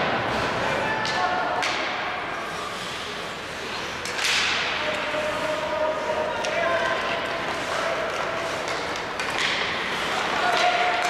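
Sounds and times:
hockey sticks hitting puck: 0.1 - 2.1, 3.9 - 11.0
skates scraping on ice: 2.8 - 11.0.

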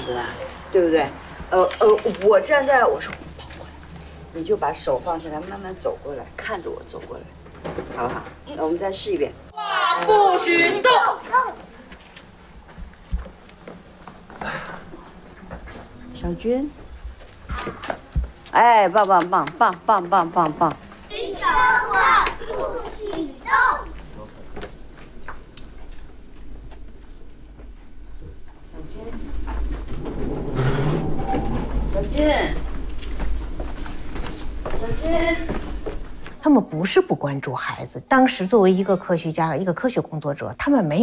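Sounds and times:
camera dolly rumbling on track: 24.7 - 36.4.

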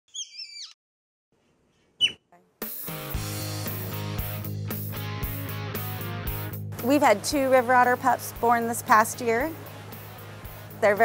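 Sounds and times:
otter pup squeaky calls: 0.1 - 0.8, 1.9 - 2.3
background music: 2.4 - 11.0.

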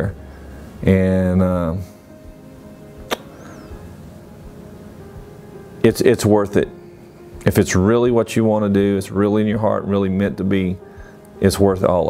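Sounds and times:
quiet background music: 0.0 - 12.0
sharp click: 3.0 - 3.3.

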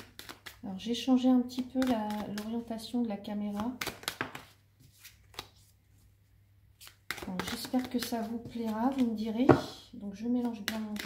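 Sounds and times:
cards being shuffled: 0.0 - 0.6, 3.5 - 5.8, 6.8 - 9.2.

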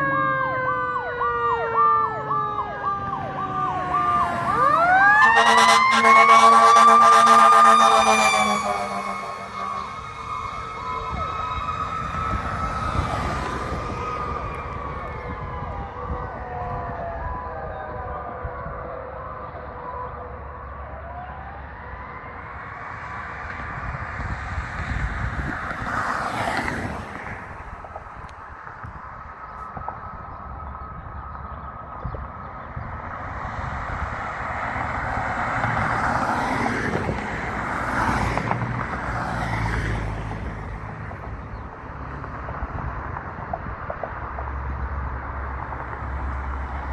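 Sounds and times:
fire engine siren wailing: 0.0 - 42.9
cars passing: 0.0 - 46.9.

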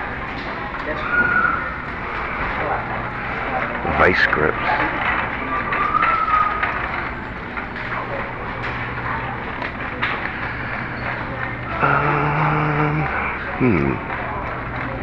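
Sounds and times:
steady low hum: 7.3 - 15.0.

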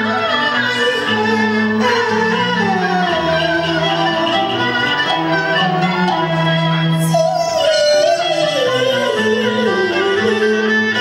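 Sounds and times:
woman singing opera: 0.0 - 5.0, 7.0 - 11.0
instrumental accompaniment: 0.0 - 11.0.

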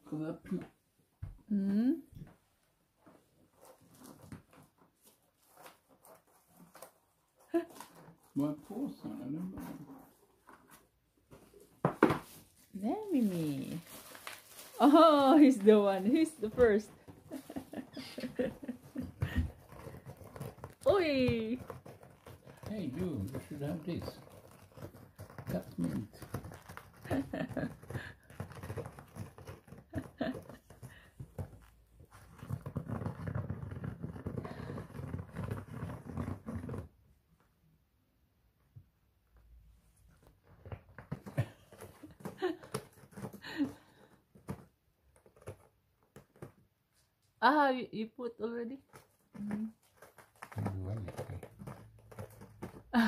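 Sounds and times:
sharp knocks on tile floor: 11.8 - 12.3
cat clawing cardboard: 16.0 - 36.9, 40.2 - 46.6, 48.8 - 53.0.

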